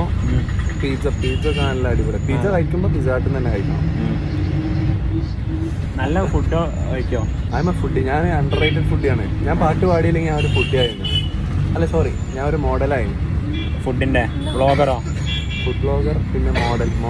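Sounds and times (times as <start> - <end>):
bus engine rumble: 0.0 - 17.0
road noise: 0.0 - 17.0.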